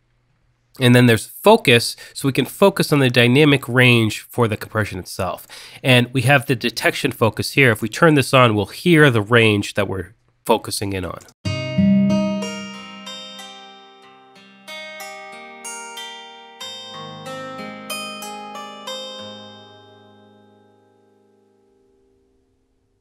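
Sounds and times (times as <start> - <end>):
plucked acoustic guitar: 11.5 - 15.6, 16.6 - 20.8.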